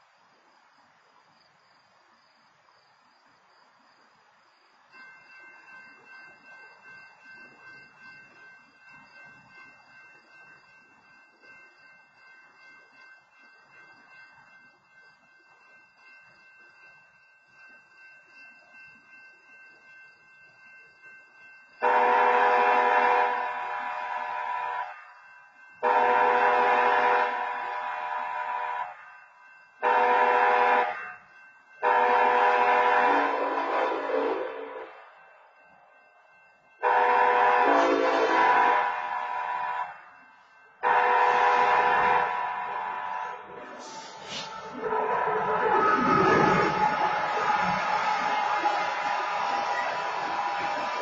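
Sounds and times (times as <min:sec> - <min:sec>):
locomotive air horn blasts: 0:21.8 - 0:25.0, 0:25.8 - 0:29.0, 0:29.8 - 0:31.2, 0:31.8 - 0:34.8, 0:36.8 - 0:40.2, 0:40.8 - 0:51.0.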